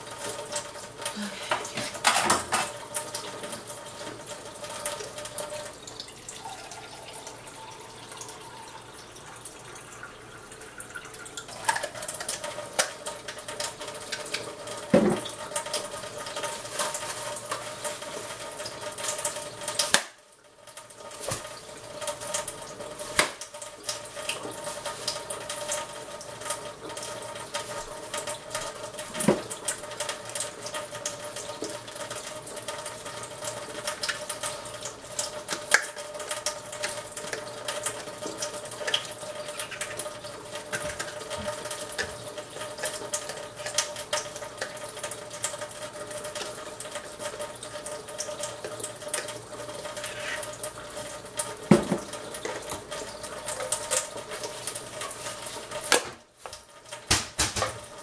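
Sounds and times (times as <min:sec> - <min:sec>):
faucet running into steel sink: 0:00.0 - 0:58.0.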